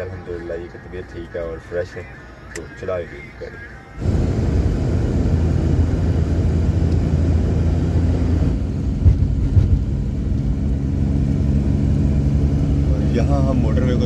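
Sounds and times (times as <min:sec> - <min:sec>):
engine and tyre rumble: 0:03.9 - 0:14.0.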